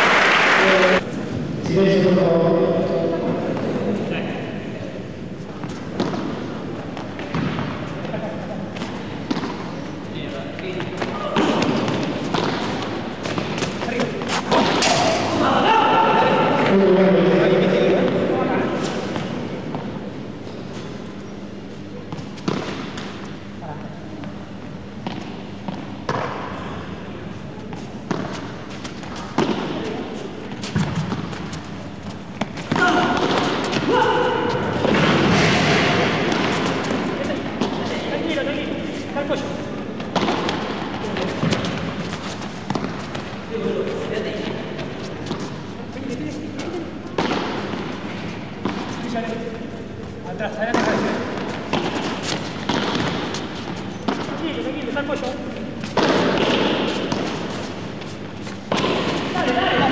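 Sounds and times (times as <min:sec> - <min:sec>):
ball struck by paddles: 0:05.9 - 0:06.4, 0:07.0 - 0:07.8, 0:08.8 - 0:09.7, 0:10.9 - 0:15.4, 0:22.1 - 0:23.4, 0:25.0 - 0:26.6, 0:28.0 - 0:31.7, 0:32.4 - 0:37.9, 0:40.0 - 0:43.7, 0:47.1 - 0:49.2, 0:50.6 - 0:54.7, 0:55.8 - 0:59.9.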